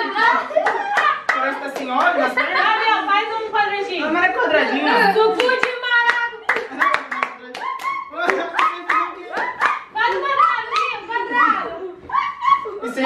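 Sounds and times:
voices: 0.0 - 13.0
hands clapping quickly: 5.4 - 11.0.

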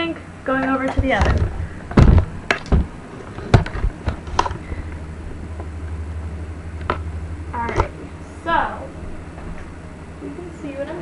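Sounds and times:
low steady hum: 0.0 - 11.0
handling knocks and bumps: 0.9 - 4.6.

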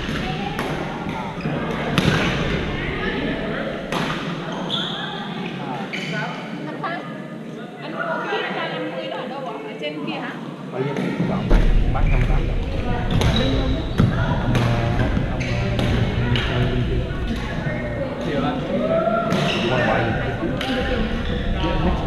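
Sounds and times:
people talking: 0.0 - 22.0
low rumble: 11.4 - 18.9.

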